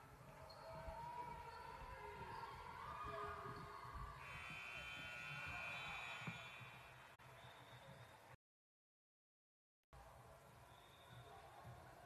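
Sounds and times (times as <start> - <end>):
faint gym noise: 0.0 - 8.4.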